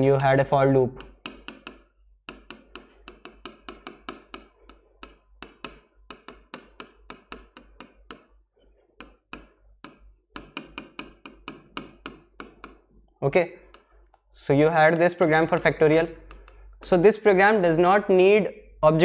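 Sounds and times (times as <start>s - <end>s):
pen tapping on writing board: 1.0s - 8.4s, 9.0s - 12.9s, 13.6s - 14.1s, 14.9s - 16.6s.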